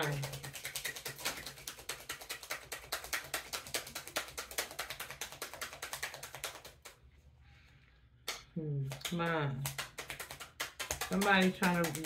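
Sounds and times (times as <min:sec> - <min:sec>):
cards being shuffled: 0:08.9 - 0:12.0.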